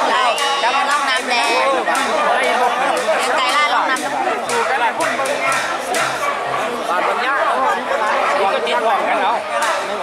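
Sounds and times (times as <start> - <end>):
people talking animatedly: 0.0 - 10.0.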